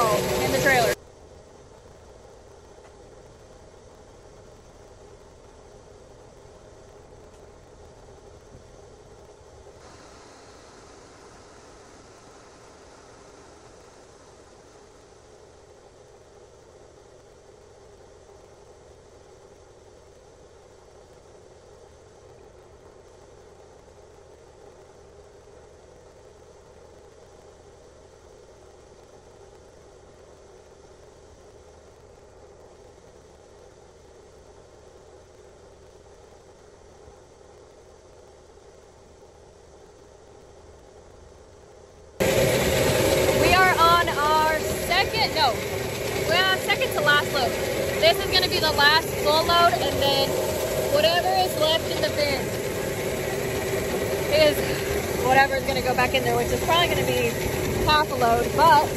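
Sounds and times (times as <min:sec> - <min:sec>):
woman speaking: 0:00.0 - 0:01.0, 0:43.4 - 0:52.6, 0:54.3 - 0:58.9
auger mechanical hum: 0:00.0 - 0:18.7, 0:39.9 - 0:58.9.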